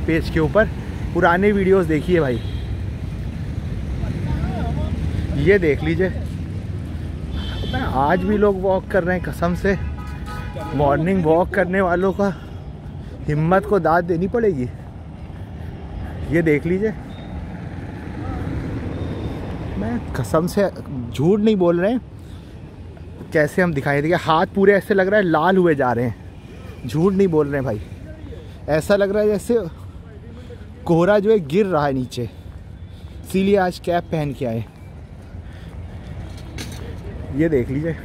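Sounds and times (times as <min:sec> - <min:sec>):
road traffic rumble: 0:00.0 - 0:38.0.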